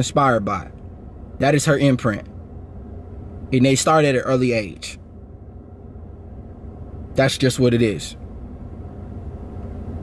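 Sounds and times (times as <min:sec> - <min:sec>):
low rumble inside car cabin: 0:00.0 - 0:10.0.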